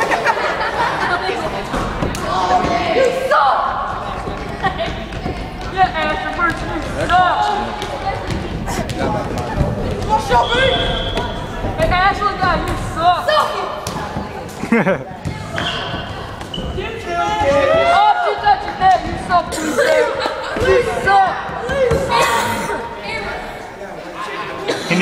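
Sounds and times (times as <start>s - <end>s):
voices calling in gymnasium: 0.0s - 25.0s.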